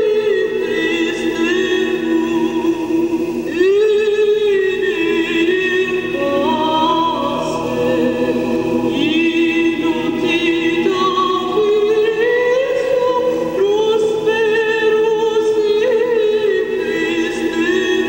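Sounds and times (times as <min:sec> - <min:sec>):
choir singing held notes: 0:04.5 - 0:18.0.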